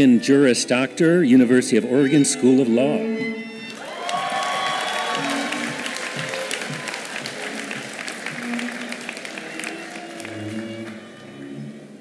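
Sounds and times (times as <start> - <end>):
quiet background music: 0.0 - 12.0
audience applauding: 3.7 - 11.5
person whooping: 3.8 - 7.1.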